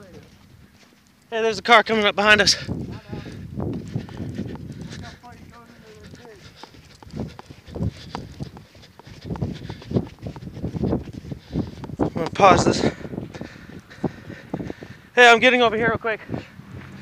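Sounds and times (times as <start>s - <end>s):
footsteps in snow: 0.0s - 15.1s, 16.2s - 17.0s
faint voices: 1.3s - 8.5s.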